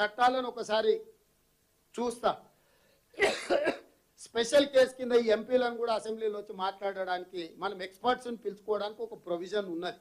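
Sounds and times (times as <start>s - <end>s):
man speaking: 0.0s - 1.2s, 1.9s - 2.5s, 4.2s - 10.0s
man coughing: 3.2s - 3.9s.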